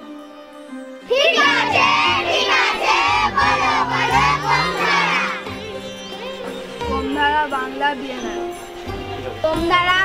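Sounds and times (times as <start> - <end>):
crowd shouting: 1.1 - 5.5.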